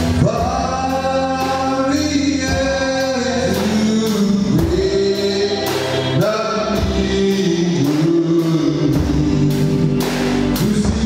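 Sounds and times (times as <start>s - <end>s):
backing singers: 0.0s - 11.0s
instruments over a steady beat: 0.0s - 11.0s
man singing into a microphone: 0.0s - 11.0s.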